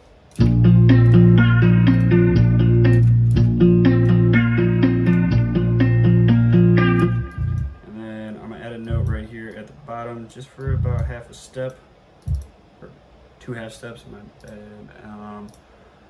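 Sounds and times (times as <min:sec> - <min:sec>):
plucked guitar loop: 0:00.3 - 0:07.8, 0:08.8 - 0:09.2, 0:10.6 - 0:11.2
deep sustained bass: 0:00.4 - 0:07.7, 0:08.9 - 0:09.2, 0:10.7 - 0:11.1.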